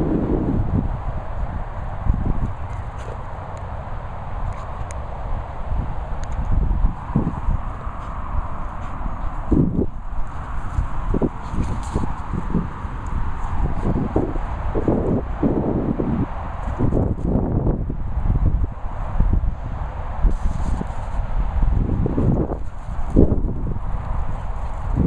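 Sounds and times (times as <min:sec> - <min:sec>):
wind buffeting microphone: 0:00.0 - 0:25.0
footsteps on grass: 0:07.0 - 0:14.1.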